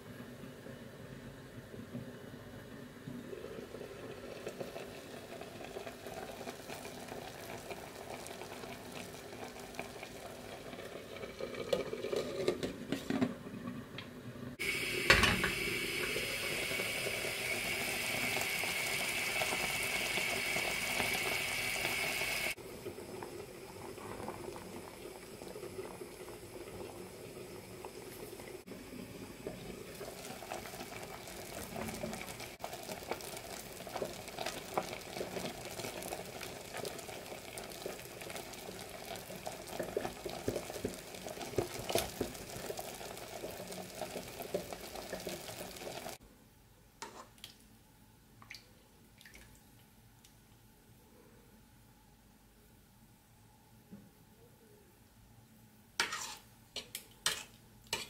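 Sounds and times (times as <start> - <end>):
pot bubbling: 2.1 - 46.2.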